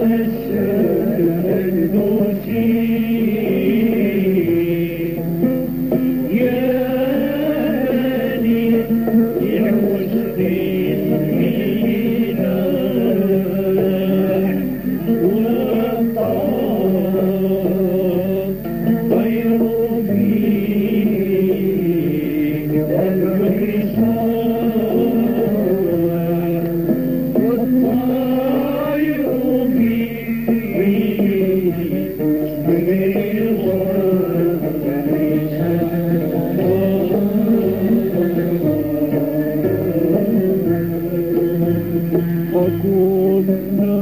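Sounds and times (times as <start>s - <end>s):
musical backing: 0.0s - 44.0s
voices singing sustained chant: 0.0s - 44.0s.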